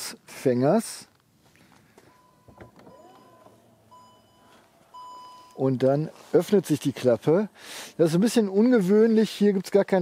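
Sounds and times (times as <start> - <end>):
high electronic warning beeps: 2.1 - 5.8.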